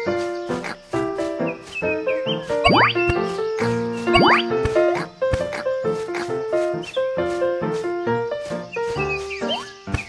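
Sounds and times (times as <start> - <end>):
upbeat background music: 0.0 - 10.0
chirping synth slides: 1.7 - 5.1.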